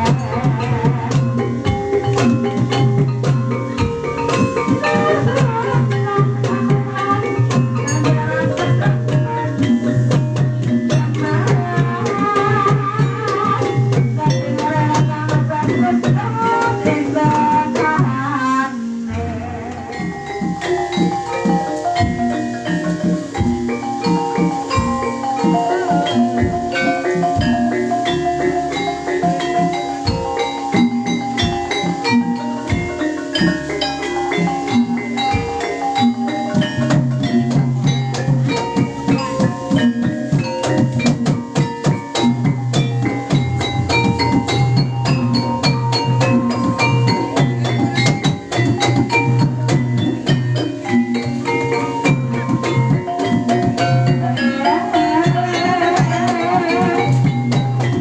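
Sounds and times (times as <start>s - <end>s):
drum strokes: 0.0s - 58.0s
metallophones ringing: 0.0s - 58.0s.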